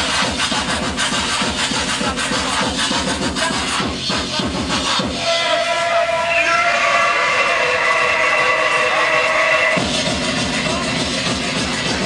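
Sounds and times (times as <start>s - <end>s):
hard electronic music: 0.0s - 12.0s.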